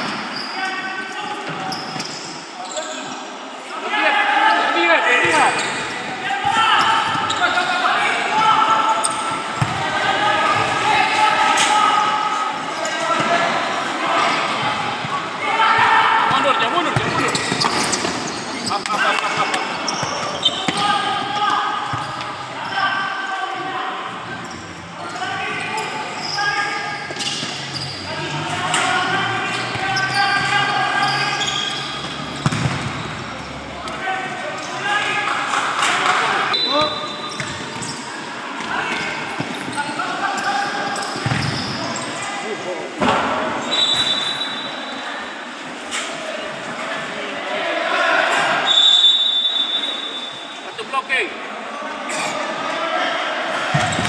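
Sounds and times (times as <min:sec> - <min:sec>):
players shouting in echoing hall: 0:00.0 - 0:54.0
ball kicked and bouncing: 0:32.4 - 0:32.9.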